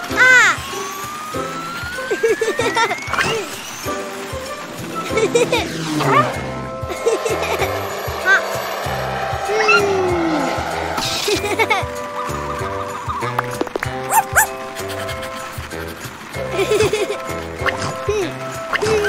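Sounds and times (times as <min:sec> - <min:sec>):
light background music: 0:00.0 - 0:19.0
whistling glide: 0:00.3 - 0:16.5.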